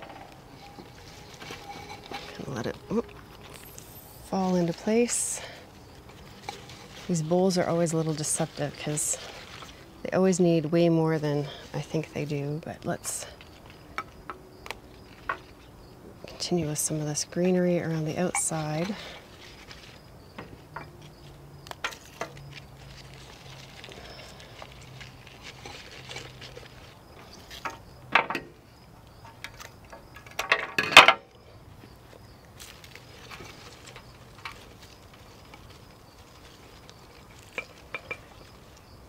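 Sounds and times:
foliage rustling: 0:00.0 - 0:30.0, 0:31.4 - 0:39.0.

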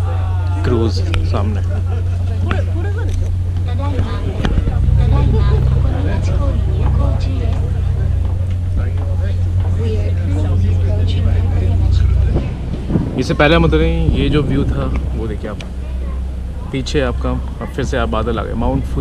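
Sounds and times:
passengers talking: 0:00.0 - 0:19.0
ship engine drone: 0:00.0 - 0:19.0.

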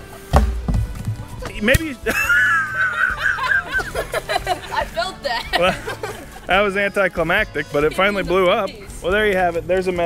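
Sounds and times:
child squealing laugh: 0:02.1 - 0:04.7.

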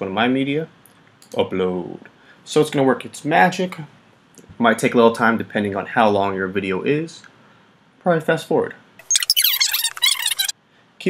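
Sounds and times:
fast-forwarded voice chatter: 0:09.1 - 0:10.5.

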